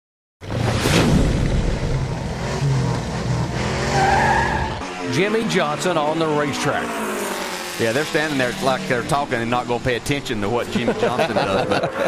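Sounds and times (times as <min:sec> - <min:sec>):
race car engine noise: 0:00.4 - 0:12.0.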